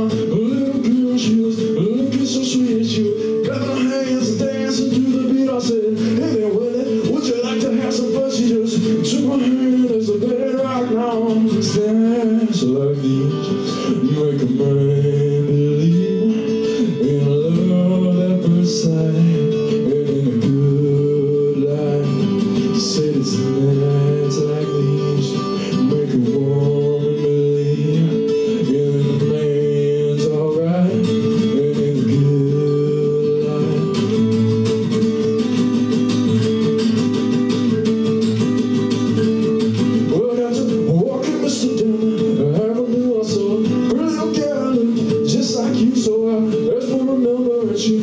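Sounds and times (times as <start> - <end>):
acoustic guitar: 0.0 - 48.0
man singing: 0.0 - 48.0.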